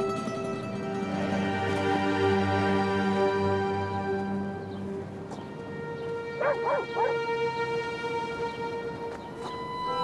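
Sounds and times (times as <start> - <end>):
slow background music: 0.0 - 10.0
dog barking: 6.4 - 7.2.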